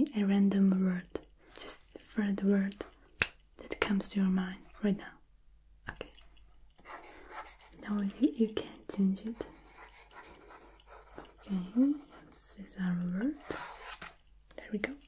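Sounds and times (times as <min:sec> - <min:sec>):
woman speaking softly: 0:03.6 - 0:05.2, 0:07.8 - 0:09.7, 0:11.4 - 0:13.4, 0:14.5 - 0:15.0.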